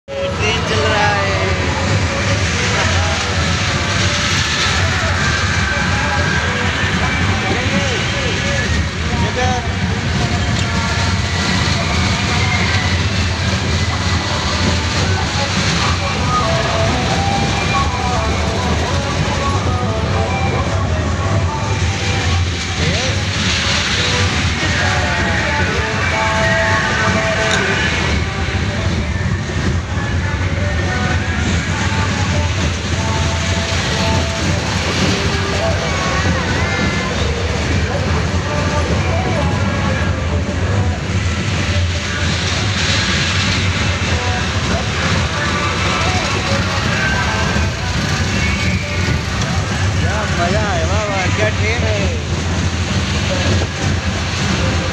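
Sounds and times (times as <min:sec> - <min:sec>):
chatter of many voices: 0:00.0 - 0:54.9
kiddie train ride rumbling: 0:00.0 - 0:54.9.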